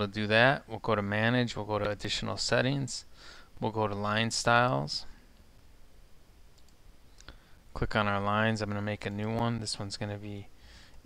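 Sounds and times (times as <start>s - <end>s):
faint computer mouse clicks: 6.5s - 7.4s.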